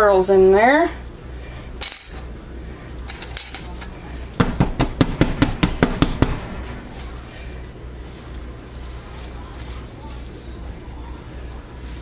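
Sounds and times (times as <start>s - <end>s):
soap mold knocking on glass cooktop: 4.4s - 6.4s.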